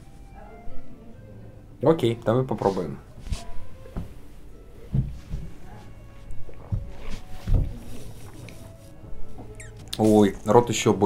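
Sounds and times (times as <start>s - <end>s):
squeaky slurp: 9.6s - 10.1s.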